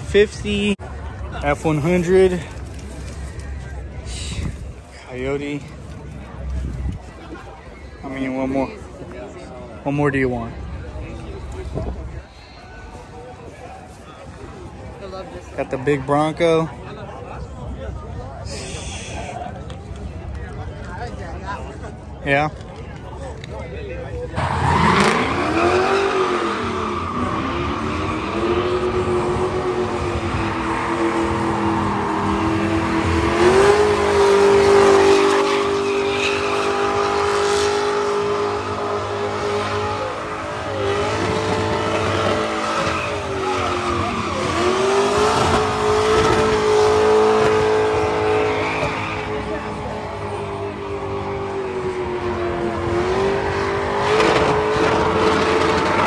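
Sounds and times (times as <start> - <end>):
tyres squealing on pavement: 24.3 - 29.1, 29.9 - 49.8
car engine revving high: 24.4 - 56.0.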